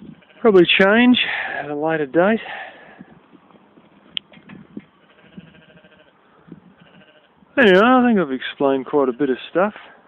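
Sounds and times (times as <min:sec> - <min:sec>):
sheep bleating faintly: 0:05.0 - 0:06.2, 0:06.8 - 0:07.4.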